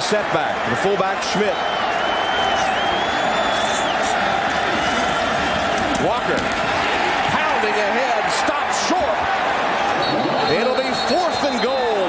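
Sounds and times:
stadium crowd cheering: 0.0 - 12.0
high wavering whistle: 1.6 - 5.0.

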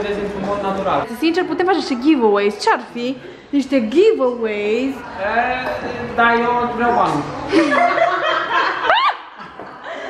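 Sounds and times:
people laughing: 7.5 - 10.0.

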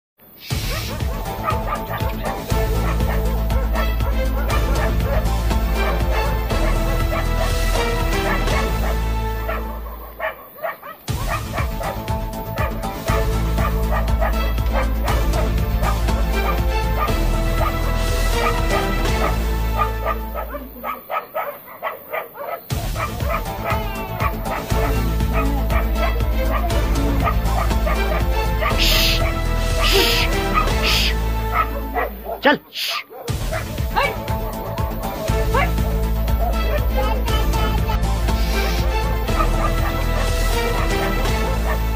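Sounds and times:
background music with steady bass: 0.2 - 41.9
dog barking and yelping: 0.5 - 37.4, 38.3 - 41.9.

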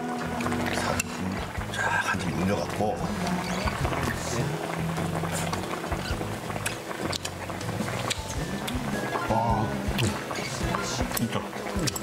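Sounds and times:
background music with low notes: 0.0 - 12.0.

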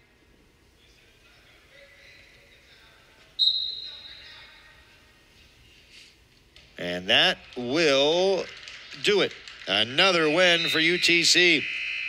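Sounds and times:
arena background noise: 0.0 - 12.0
referee's whistle: 3.4 - 4.4, 10.4 - 12.0.

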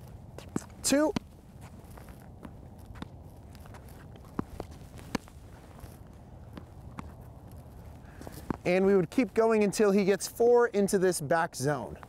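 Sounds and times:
shoes moving on court: 0.0 - 12.0.

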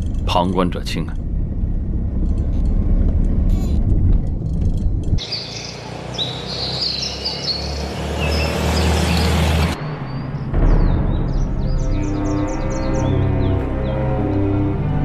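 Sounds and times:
car engine and road noise: 0.0 - 15.0
birds chirping: 5.1 - 14.8
car driving by on dirt road: 5.3 - 12.6.

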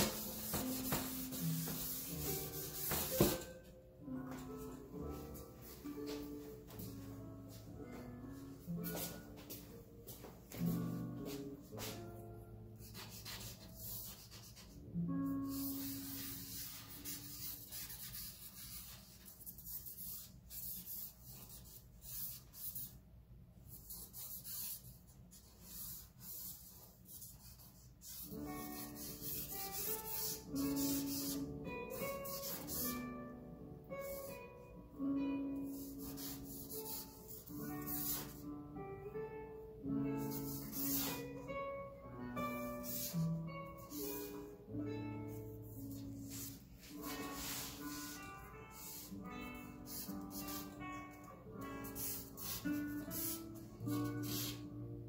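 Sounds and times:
charcoal scratching on paper: 0.0 - 3.4, 12.8 - 14.8, 15.4 - 23.0, 23.7 - 33.0, 35.6 - 38.4, 40.2 - 41.4, 45.3 - 50.8, 51.8 - 54.7.

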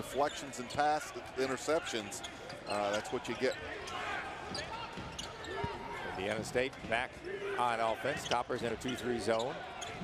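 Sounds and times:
shoe squeaks on court: 2.2 - 3.4, 4.5 - 5.7.

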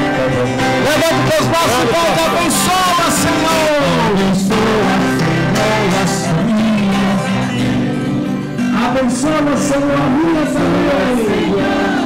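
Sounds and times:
guitar accompaniment: 0.0 - 12.0
person singing hymn: 2.5 - 8.1, 8.8 - 12.0.

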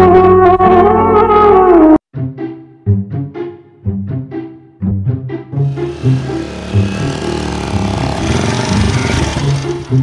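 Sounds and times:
quad bike engine running: 5.7 - 10.0.

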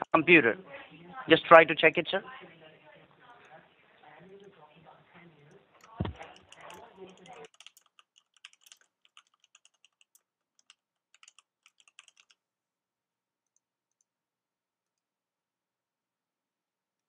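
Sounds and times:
typing on computer keyboard: 5.8 - 12.4
thump: 6.0 - 6.2.

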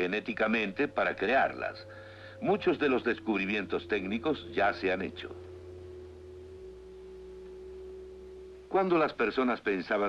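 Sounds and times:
low hum: 0.0 - 10.0
steady pitched tone: 0.0 - 10.0.

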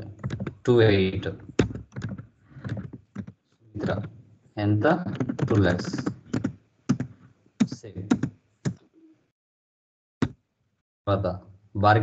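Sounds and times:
computer keyboard key clacks: 0.2 - 0.6, 1.6 - 4.1, 5.1 - 8.8.

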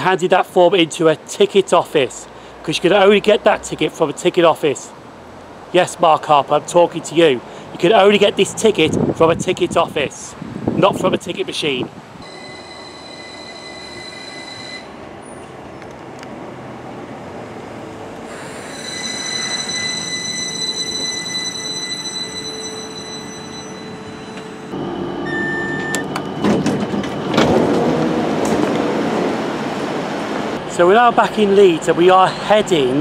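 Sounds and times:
short beep: 12.2 - 15.0, 18.5 - 27.4
train brakes squealing: 12.2 - 15.4, 18.3 - 27.4
train doors opening: 18.3 - 30.0.

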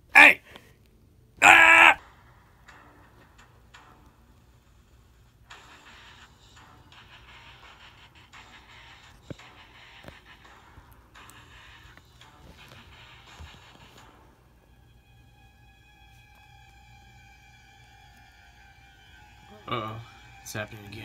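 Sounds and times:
quiet background music: 0.0 - 21.0
loud voiced cries: 0.1 - 0.4, 1.4 - 2.0.

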